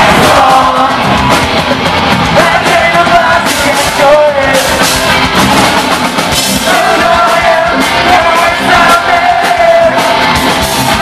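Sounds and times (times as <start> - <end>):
loud live rock band: 0.0 - 11.0.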